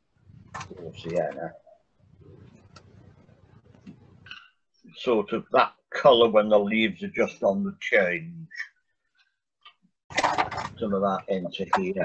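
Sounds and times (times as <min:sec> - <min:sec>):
man speaking: 0:00.6 - 0:01.8, 0:04.9 - 0:08.8, 0:10.7 - 0:12.0.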